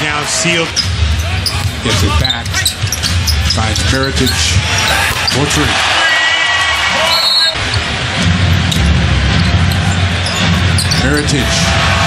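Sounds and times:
crowd rumble: 0.0s - 12.0s.

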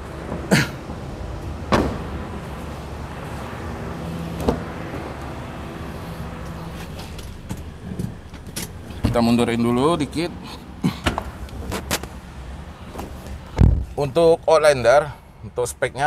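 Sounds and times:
steady low hum: 0.0s - 15.6s
knocks on car body and doors: 1.7s - 2.2s.

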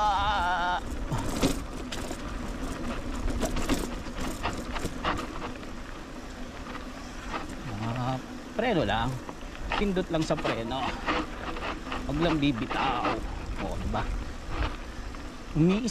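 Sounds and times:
bike clicks and rattles: 0.0s - 15.9s
bike tyres rumbling on dirt: 0.0s - 15.9s.

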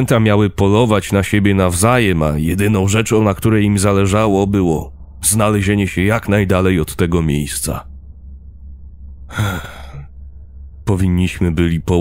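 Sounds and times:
dark ambient music drone: 0.0s - 12.0s
breathy sigh: 9.3s - 10.1s.

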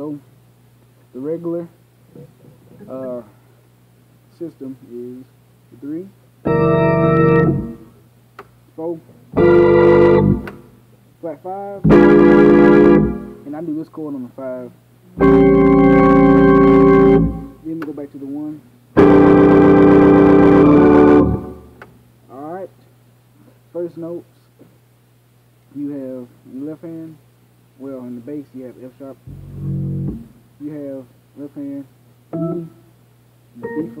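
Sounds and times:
organ chord: 6.4s - 8.0s, 9.3s - 10.8s, 11.8s - 13.6s, 15.2s - 17.8s, 19.0s - 21.8s, 29.3s - 30.4s, 32.3s - 32.8s, 33.6s - 34.0s.

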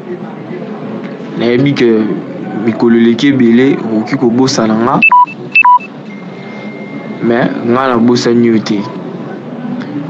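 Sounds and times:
electronic two-tone beeps: 5.0s - 7.2s
faint steady high tone: 5.0s - 7.2s.

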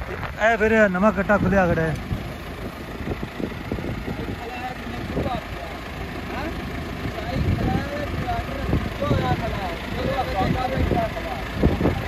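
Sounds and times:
tractor diesel engine idling: 0.0s - 12.0s.

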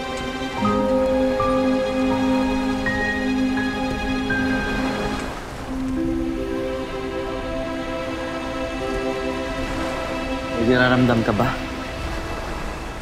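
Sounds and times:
sustained music chords: 0.0s - 13.0s.

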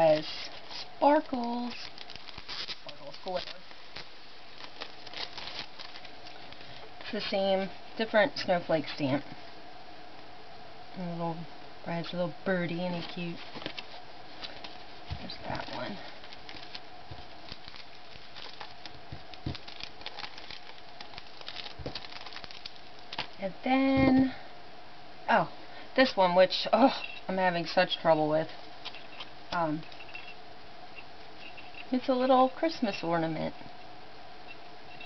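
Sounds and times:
paper cards crinkling: 0.0s - 7.4s, 12.7s - 23.4s
plastic wrap crinkling: 0.0s - 8.0s, 12.7s - 23.4s, 28.4s - 30.4s
faint steady hum: 0.0s - 35.0s.

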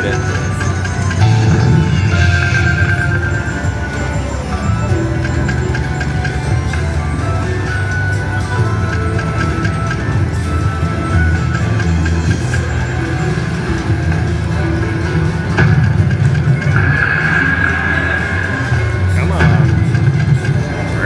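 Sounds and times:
slot machine spin music: 0.0s - 21.0s
bright sustained chime: 1.2s - 4.8s.

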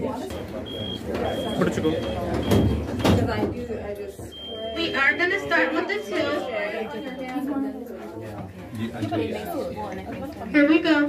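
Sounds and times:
passengers chattering: 0.0s - 11.0s
short high beeps: 0.3s - 2.8s, 4.3s - 7.5s.

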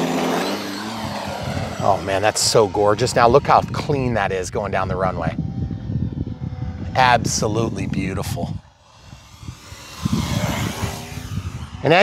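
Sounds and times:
model plane propeller whirring: 0.0s - 12.0s
low rumbling on microphone: 1.0s - 12.0s.

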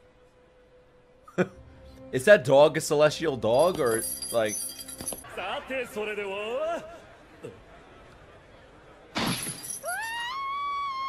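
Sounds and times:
shattering crash: 9.2s - 9.9s.

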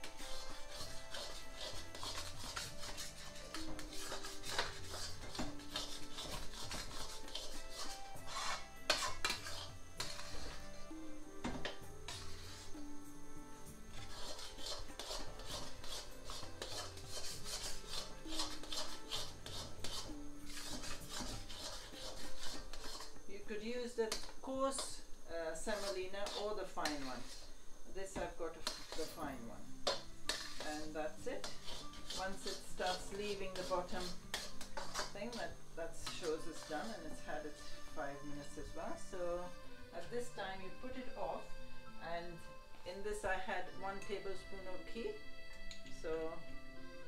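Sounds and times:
metal spoon scraping a pan: 0.0s - 12.9s, 13.9s - 41.2s.

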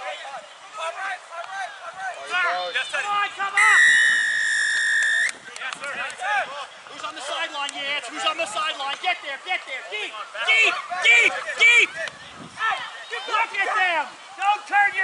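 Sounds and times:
players shouting: 0.0s - 15.0s
referee's whistle long blast: 3.6s - 5.4s.

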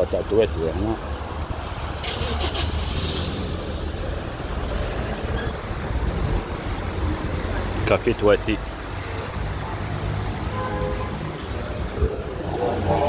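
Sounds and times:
low rumble of road vehicles: 0.0s - 13.0s.

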